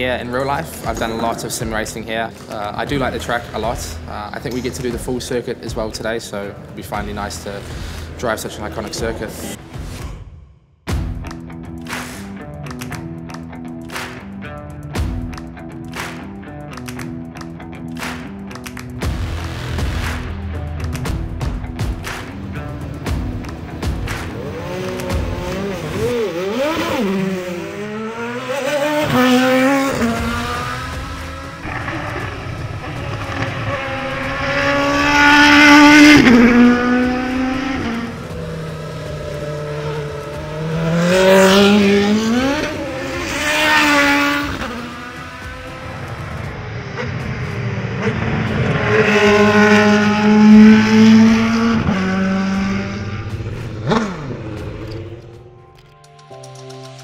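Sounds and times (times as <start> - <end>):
racing car engine at full throttle: 22.1 - 55.4.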